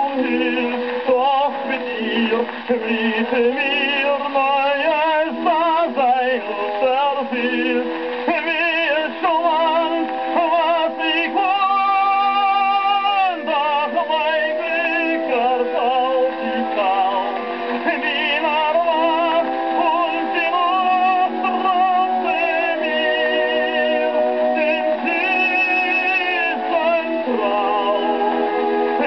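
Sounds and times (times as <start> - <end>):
orchestra on old gramophone record: 0.0 - 29.0
tenor singing with vibrato: 0.0 - 29.0.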